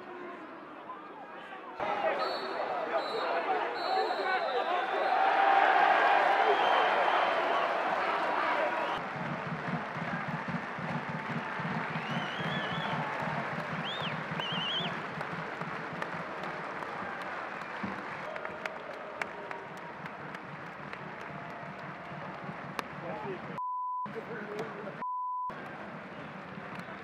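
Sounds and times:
crowd applauding: 1.8 - 27.0
sharp hand claps close by: 9.0 - 23.5, 26.4 - 27.0.

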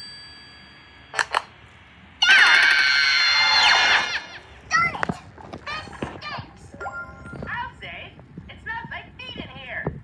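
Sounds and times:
shrill scream-like sound effect: 2.2 - 4.5.

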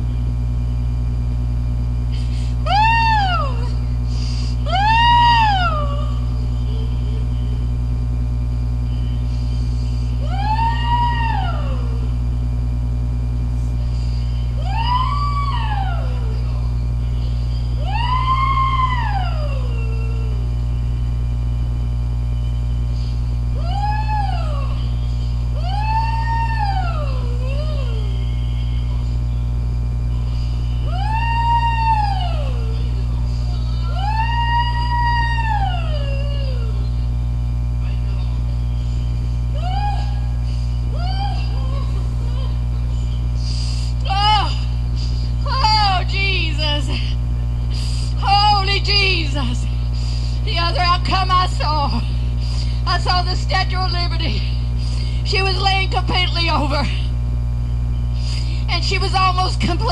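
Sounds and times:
steady electrical hum: 0.0 - 59.9
woman wailing: 2.6 - 3.8, 4.6 - 7.4, 10.2 - 12.1, 14.6 - 16.7, 17.8 - 20.4, 23.6 - 24.9, 25.6 - 28.4, 30.8 - 33.1, 33.7 - 36.9, 39.5 - 42.9, 44.0 - 44.8, 45.4 - 47.2.

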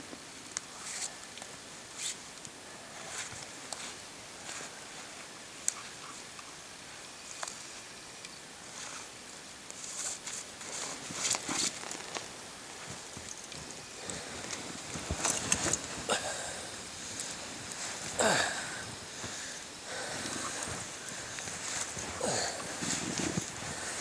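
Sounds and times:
clothing rustling: 9.8 - 24.0
footsteps in deep snow: 9.8 - 24.0.

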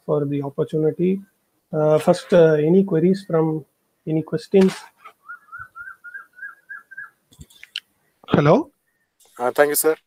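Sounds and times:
short high whistled chirps: 5.2 - 7.2.

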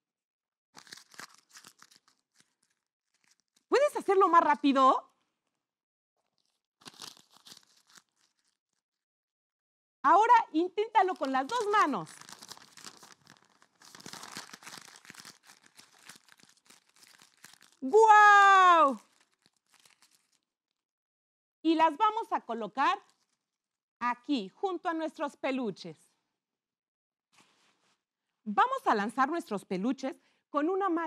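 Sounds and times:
paper crumpling: 0.8 - 3.8, 6.3 - 8.8, 11.0 - 17.9, 18.7 - 20.5, 23.0 - 23.4.

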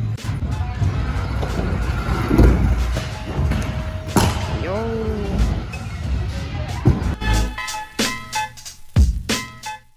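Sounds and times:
scooter wheels rolling on concrete: 0.4 - 4.2.

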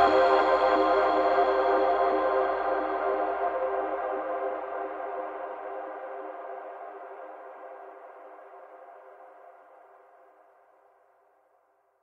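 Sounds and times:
sustained synthesizer chord: 0.0 - 7.8.

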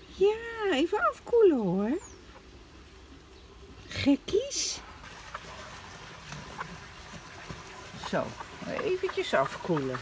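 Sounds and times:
hens clicking on stone: 8.3 - 10.0.

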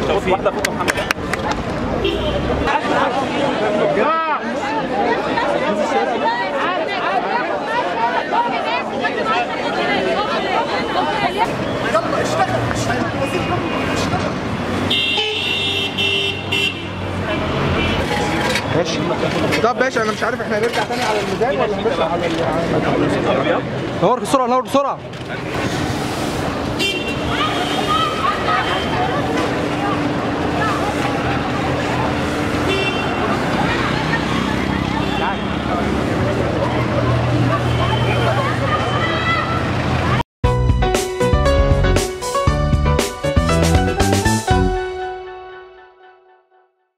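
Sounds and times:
street traffic rumble: 0.0 - 40.2
crowd talking: 0.0 - 45.5
vehicle horn honking: 2.0 - 2.5, 14.9 - 18.3, 26.8 - 29.2, 32.6 - 33.2.

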